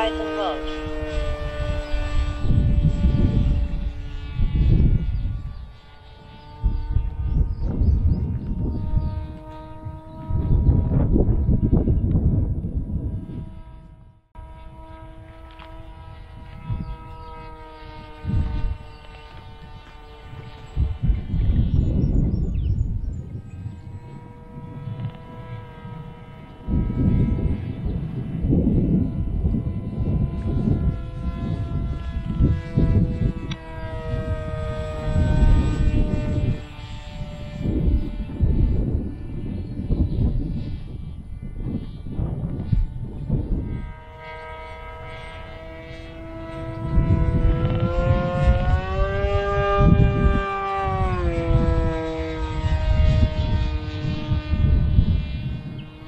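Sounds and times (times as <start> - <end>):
electric motor and propeller whine: 0.0 - 56.0
wind buffeting microphone: 0.0 - 56.0.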